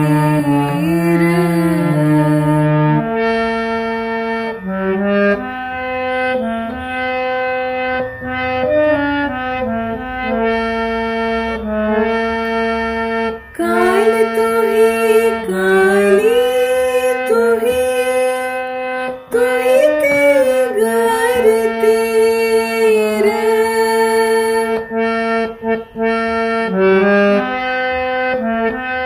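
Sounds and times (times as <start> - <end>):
person singing: 0.0 - 3.2, 13.5 - 25.0
harmonium melody over drone: 0.0 - 29.0.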